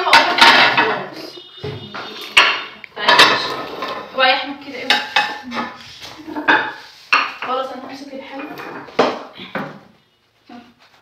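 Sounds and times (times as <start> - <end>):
sharp dish clink: 1.8 - 4.0.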